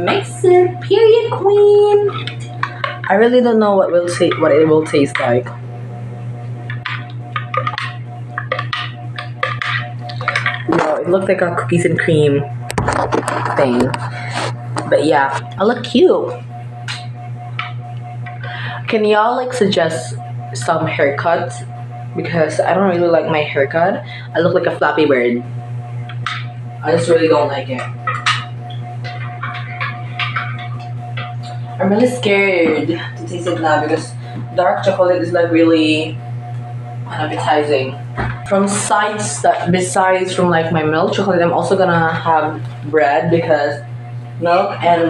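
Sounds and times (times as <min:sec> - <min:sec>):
steady low hum: 0:00.0 - 0:45.0
spoon stirring in ceramic mug: 0:29.1 - 0:31.6.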